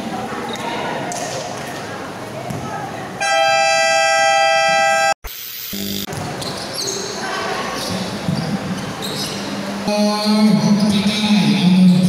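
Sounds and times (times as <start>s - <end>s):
brief lower horn tone: 3.2s - 5.1s
loud horn blast: 3.2s - 5.2s.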